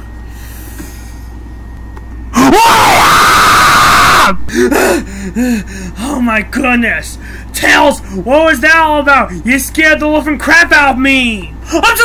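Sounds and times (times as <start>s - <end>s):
person screaming: 2.4s - 5.0s.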